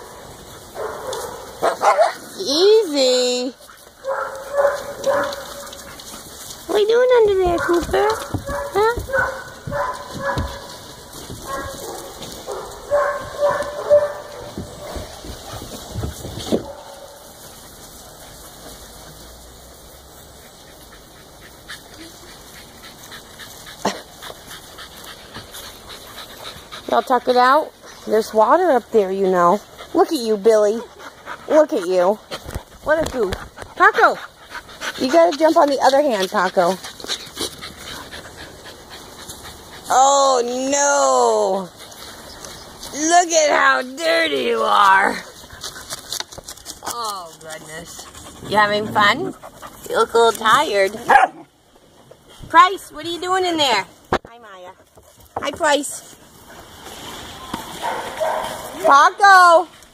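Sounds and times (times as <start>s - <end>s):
dogs barking and whining: 0.0s - 2.8s, 3.7s - 6.3s, 7.1s - 15.4s, 57.4s - 59.1s
dog panting softly: 20.4s - 28.1s, 29.5s - 39.9s, 47.8s - 50.3s.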